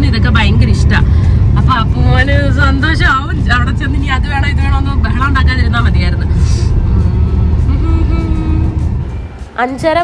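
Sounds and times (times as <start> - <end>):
car engine and tyres rumbling: 0.0 - 10.0
faint background music: 0.0 - 10.0.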